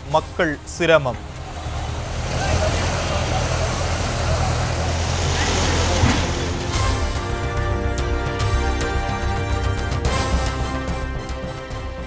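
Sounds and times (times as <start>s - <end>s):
river floodwater rushing: 1.2s - 6.8s.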